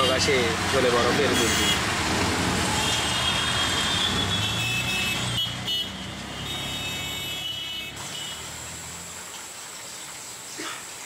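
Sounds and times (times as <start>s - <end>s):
auto-rickshaw engine drone: 0.0s - 9.2s
traffic noise: 0.0s - 11.0s
vehicle horns tooting: 1.2s - 1.9s, 2.7s - 8.5s.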